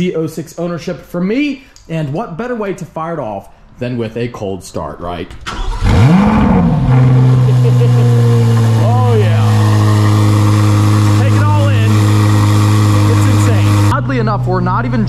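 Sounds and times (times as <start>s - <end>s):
car engine cold start and idle: 5.4s - 15.0s.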